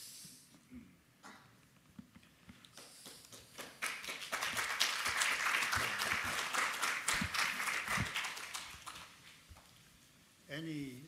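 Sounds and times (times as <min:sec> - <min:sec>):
audience applauding: 0:02.8 - 0:09.4.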